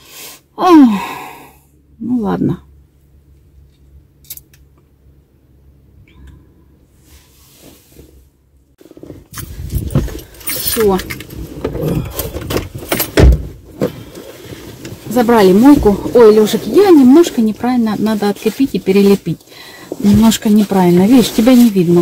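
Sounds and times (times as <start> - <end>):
rustling: 7.0 - 22.0
clinks and knocks: 9.3 - 13.4
heavy thump: 12.4 - 14.0.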